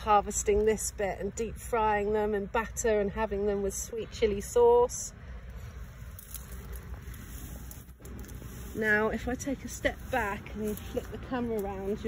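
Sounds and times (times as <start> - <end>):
faint outdoor background: 0.0 - 12.0.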